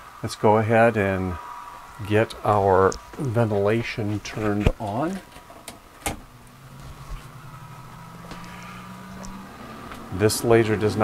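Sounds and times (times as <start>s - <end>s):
ventilation fan motor humming: 0.0s - 11.0s.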